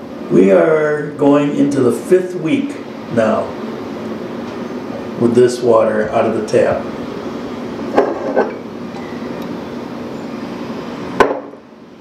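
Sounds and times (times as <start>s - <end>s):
steady background hum: 0.0s - 12.0s
knocks: 11.2s - 11.6s.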